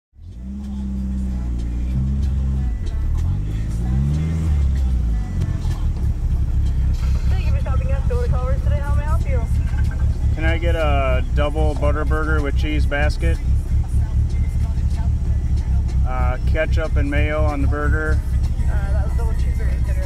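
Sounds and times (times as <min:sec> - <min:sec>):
car engine idling: 0:00.2 - 0:20.0
person speaking: 0:07.0 - 0:13.4, 0:16.0 - 0:20.0.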